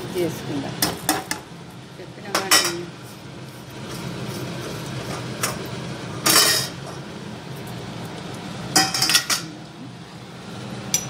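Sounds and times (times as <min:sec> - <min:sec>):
metal spoon clinking on pan: 0:08.8 - 0:09.5.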